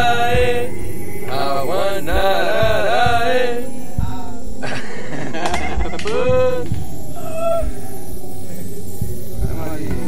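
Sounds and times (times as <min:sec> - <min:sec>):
low drum beats: 0:00.0 - 0:07.8, 0:08.9 - 0:10.0
chanted singing: 0:00.0 - 0:10.0.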